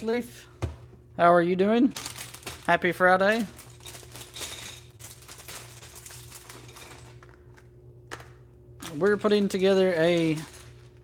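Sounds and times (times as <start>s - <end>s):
low steady hum: 0.0s - 11.0s
plastic packaging rustling: 1.8s - 7.8s, 8.8s - 11.0s.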